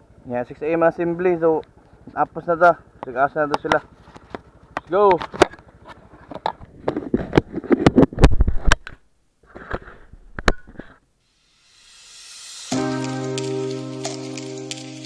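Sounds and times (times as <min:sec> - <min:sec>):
rising whoosh: 0:11.3 - 0:13.6
background music with chords: 0:12.5 - 0:15.0.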